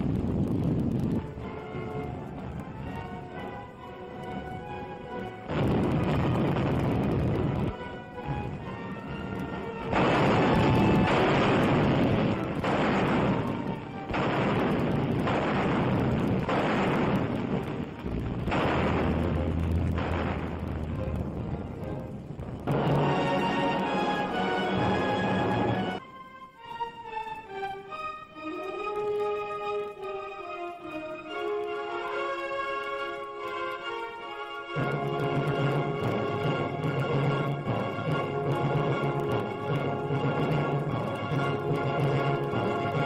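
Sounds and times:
explosions: 0.0s - 3.3s, 5.3s - 26.0s, 34.8s - 43.0s
music: 0.0s - 43.0s
gunfire: 5.5s - 7.8s, 9.8s - 22.0s, 34.8s - 43.0s.

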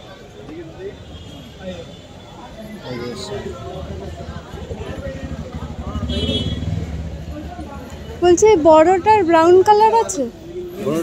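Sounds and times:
vehicle engine rumbling: 3.2s - 9.8s.

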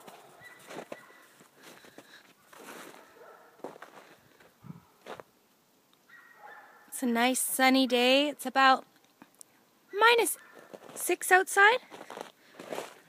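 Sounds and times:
footsteps in snow: 0.0s - 5.3s, 10.4s - 11.2s, 11.8s - 13.0s.

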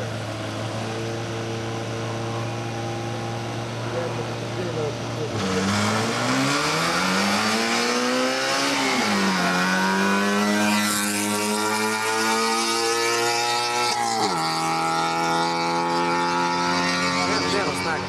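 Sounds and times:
race car engine accelerating hard: 0.0s - 18.0s.

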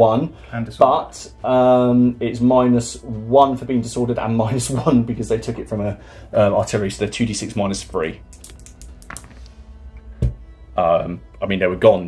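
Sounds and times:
dice clattering in a tray: 8.3s - 9.4s.

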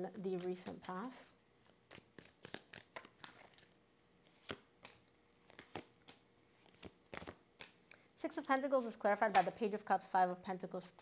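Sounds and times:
cards shuffled and dealt on table: 0.3s - 7.9s.

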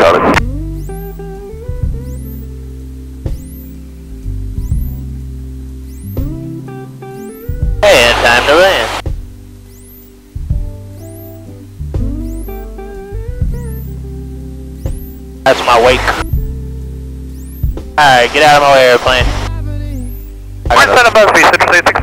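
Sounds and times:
guitar music with bass: 0.0s - 22.0s.

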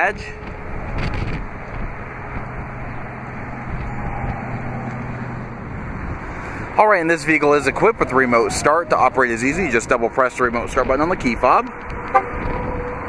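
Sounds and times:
wind on microphone: 0.0s - 13.0s.

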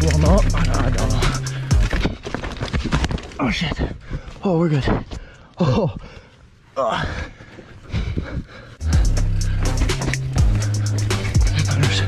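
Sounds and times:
music with deep bass and beat: 0.0s - 2.0s, 8.8s - 12.0s
mountain bike rattling over rocks: 0.0s - 3.9s.

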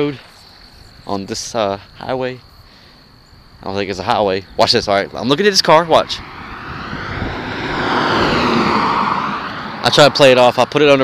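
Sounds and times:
car passing at speed: 5.8s - 11.0s.

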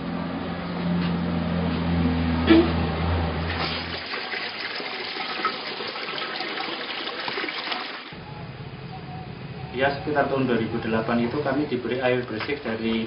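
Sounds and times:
water splashing into a basin: 3.5s - 8.2s.

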